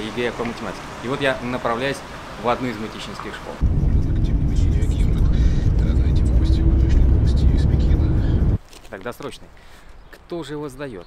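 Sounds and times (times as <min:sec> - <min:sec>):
car engine and tyres rumbling: 0:03.6 - 0:08.6.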